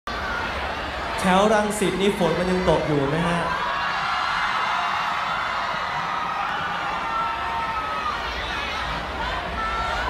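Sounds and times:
concert crowd cheering and screaming: 0.1s - 10.0s.

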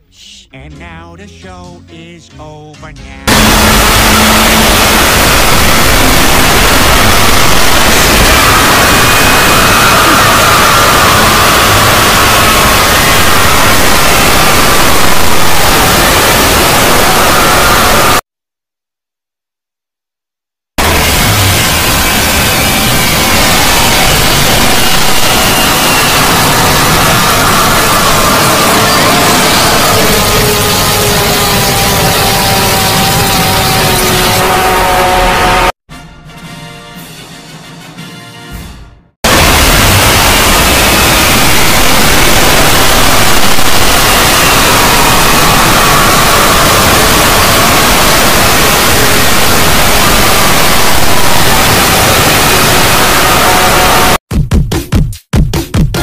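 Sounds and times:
distorted falling music tones: 0.2s - 18.2s
harsh static noise: 3.3s - 18.2s, 20.8s - 35.8s, 39.2s - 54.2s.

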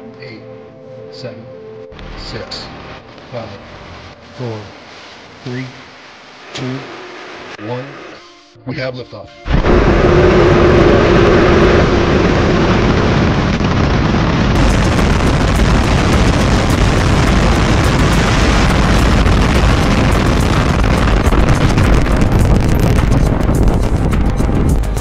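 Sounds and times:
rocket engine roar: 9.5s - 25.0s
sharp crackling: 9.5s - 25.0s.

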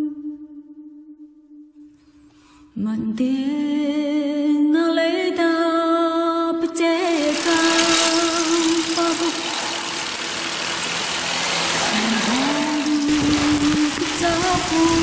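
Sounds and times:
wet road noise: 7.0s - 15.0s
rushing wind: 9.9s - 15.0s.

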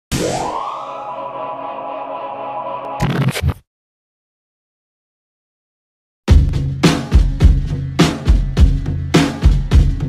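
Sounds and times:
rising sweep into ringing chord: 0.3s - 2.9s.

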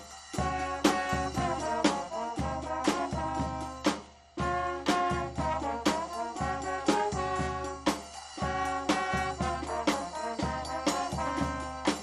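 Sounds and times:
bass drum with cymbal: 0.0s - 12.0s
brass band playing: 0.0s - 12.0s
snare drum: 0.0s - 12.0s.

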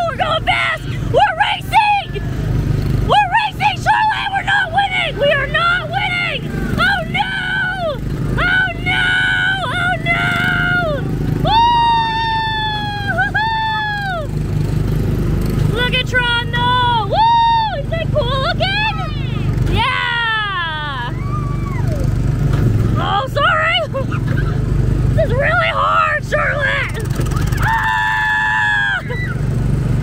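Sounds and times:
small gasoline engine running: 1.8s - 20.1s, 20.8s - 30.0s
high-pitched vocal squeals and whoops: 3.1s - 14.4s, 16.9s - 22.1s, 25.2s - 29.5s.

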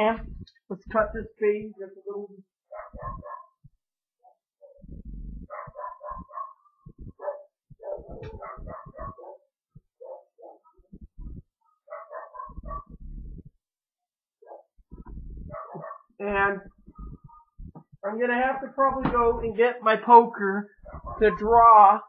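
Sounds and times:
dull low thumps: 0.0s - 1.4s, 2.9s - 4.0s, 4.8s - 10.0s, 10.8s - 11.6s, 12.4s - 13.7s, 14.8s - 18.1s, 20.8s - 21.6s
dog barking: 2.7s - 3.6s, 5.5s - 10.8s, 11.6s - 12.9s, 14.4s - 14.7s, 15.5s - 16.1s, 20.8s - 21.6s.

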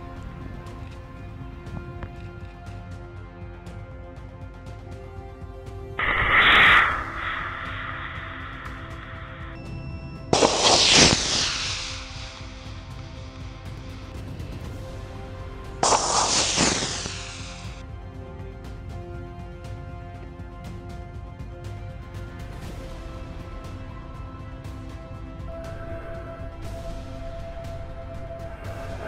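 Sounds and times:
background music: 0.0s - 29.0s
model rocket motor firing: 10.4s - 12.9s, 15.8s - 17.8s.

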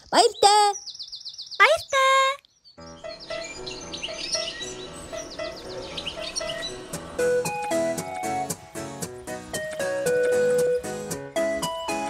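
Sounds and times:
high bird chirps: 0.0s - 8.4s
soft background music: 2.8s - 12.0s.

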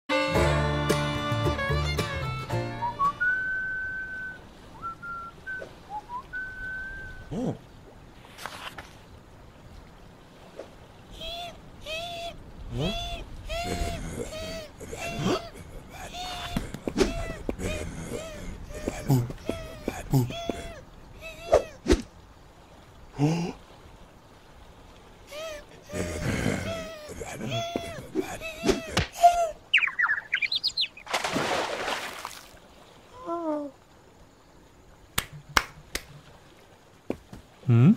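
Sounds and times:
person whistling: 2.7s - 7.3s
cartoon bird tweets: 29.7s - 31.1s.

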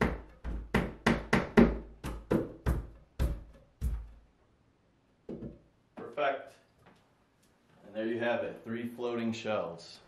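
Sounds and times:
sharp wooden knocks: 0.0s - 4.3s, 5.3s - 5.7s.

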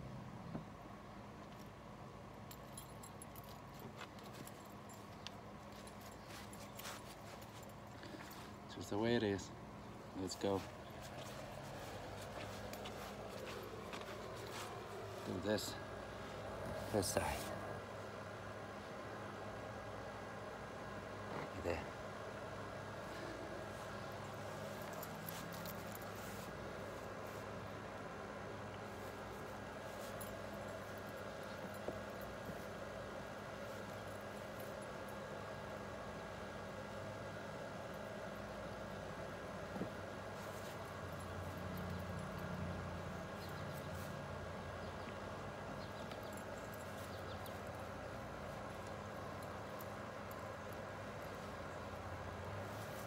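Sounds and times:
low hum: 0.0s - 53.0s.

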